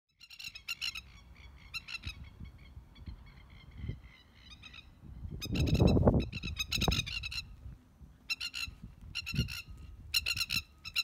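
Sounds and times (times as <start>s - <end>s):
lapwings rattling alarm calls: 8.3s - 11.0s.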